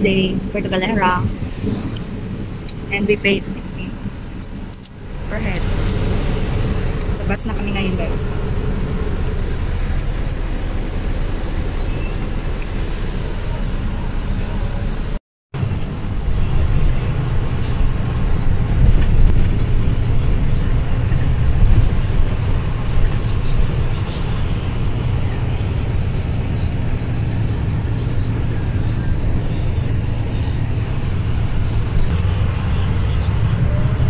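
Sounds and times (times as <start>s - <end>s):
bus engine and road rumble: 0.0s - 34.0s.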